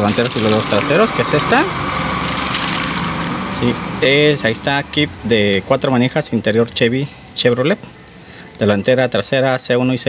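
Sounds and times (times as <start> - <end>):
plastic bag rustling: 0.0 - 3.4.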